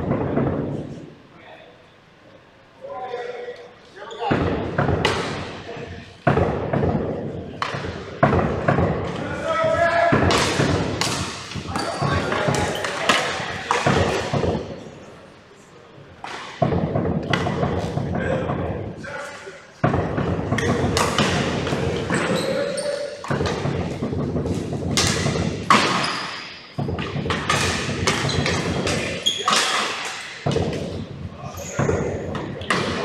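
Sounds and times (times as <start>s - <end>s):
sticks and ball clacking on floor: 10.2s - 14.9s, 23.2s - 33.0s.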